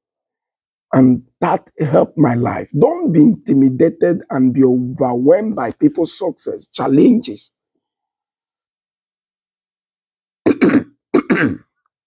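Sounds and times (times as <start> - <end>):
man clearing his throat: 10.5 - 11.8.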